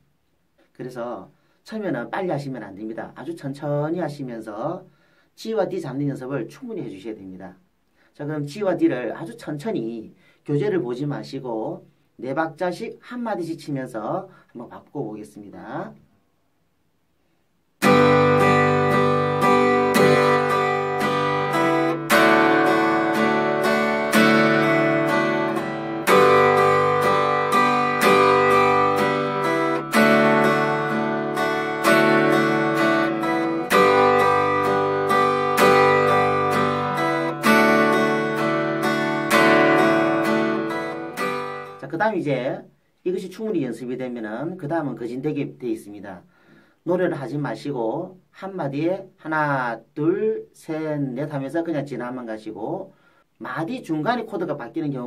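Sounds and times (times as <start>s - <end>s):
acoustic guitar strumming: 17.8s - 41.9s.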